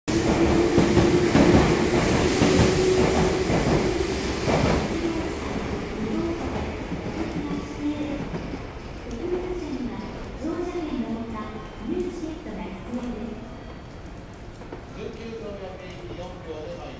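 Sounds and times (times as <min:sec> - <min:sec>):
electric train rumbling and clattering: 0:00.1 - 0:16.9
station announcement voice: 0:04.9 - 0:08.4, 0:09.0 - 0:13.7, 0:14.9 - 0:16.9.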